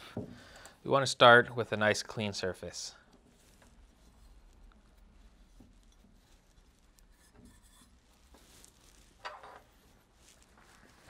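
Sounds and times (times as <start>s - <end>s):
hands rubbing metal parts: 3.2s - 11.0s.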